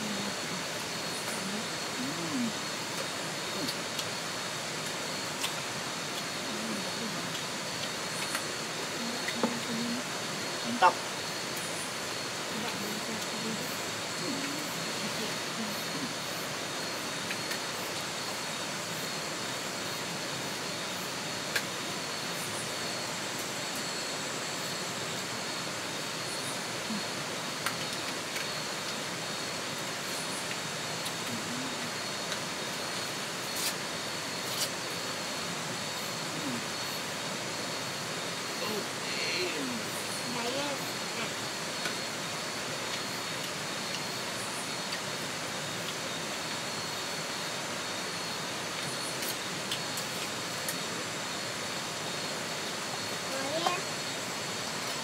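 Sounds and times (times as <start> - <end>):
even hiss: 0.0 - 55.0
high-pitched insect drone: 0.0 - 55.0.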